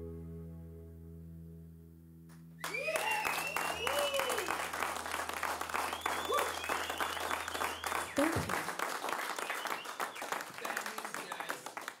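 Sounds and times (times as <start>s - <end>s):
audience applauding: 2.6s - 12.0s
people talking: 8.2s - 8.5s, 10.6s - 11.7s.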